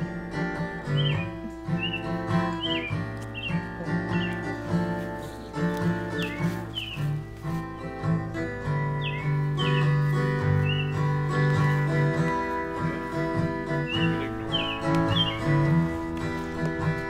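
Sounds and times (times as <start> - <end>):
acoustic guitar playing: 0.0 - 17.0
bird chirps: 0.9 - 4.8, 5.9 - 16.9.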